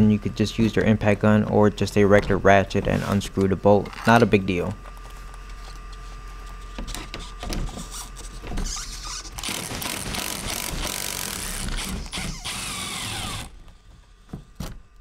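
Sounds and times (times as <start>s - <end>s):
impact driver hammering: 9.4s - 13.5s.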